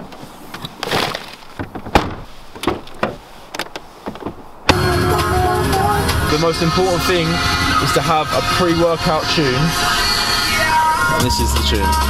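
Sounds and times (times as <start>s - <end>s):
car tailgate clicks and knocks: 0.8s - 4.5s
sharp thump: 1.6s - 3.2s
loud music: 4.7s - 12.0s.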